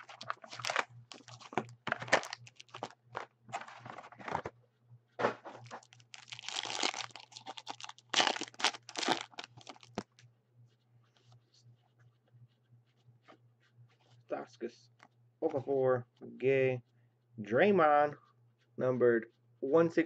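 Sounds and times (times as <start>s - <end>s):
foil wrappers crinkling and tearing: 0.0s - 4.2s, 5.6s - 10.1s
cardboard box rustling: 0.0s - 4.5s.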